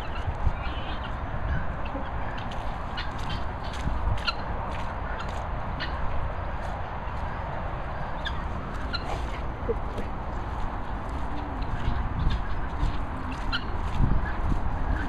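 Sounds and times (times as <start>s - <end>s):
outdoor background noise: 0.0s - 15.0s.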